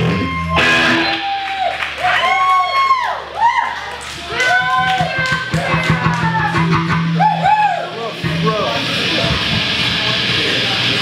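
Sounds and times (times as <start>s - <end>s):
electric guitar bent notes: 0.0s - 1.3s, 5.0s - 11.0s
drums: 0.0s - 11.0s.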